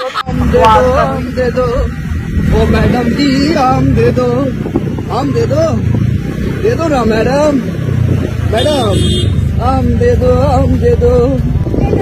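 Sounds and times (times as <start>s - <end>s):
person calling out sing-song: 0.0s - 1.9s
motor scooter engine humming: 0.0s - 12.0s.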